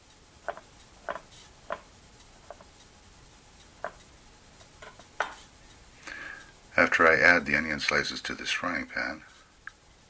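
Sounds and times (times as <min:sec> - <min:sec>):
knife tapping cutting board: 0:00.5 - 0:01.8, 0:04.8 - 0:05.4.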